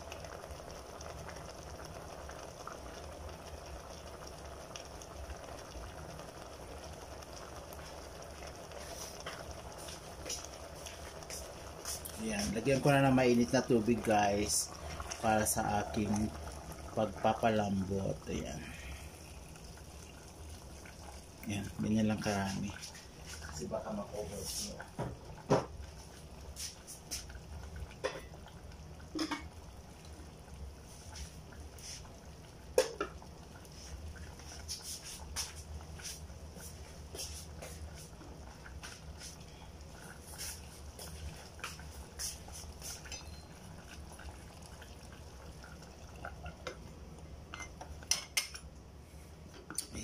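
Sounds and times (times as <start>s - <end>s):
steady low hum: 7.4s - 50.0s.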